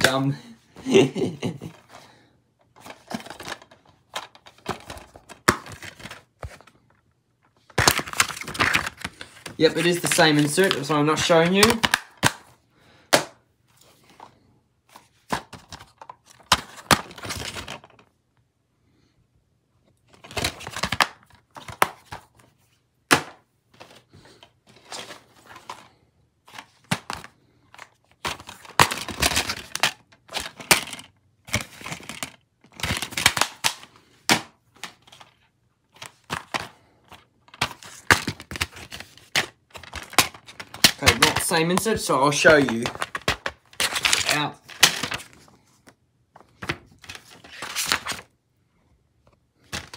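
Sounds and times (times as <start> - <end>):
plastic cases clacking: 2.7 - 6.7, 7.7 - 12.5, 26.5 - 45.4, 49.6 - 49.9.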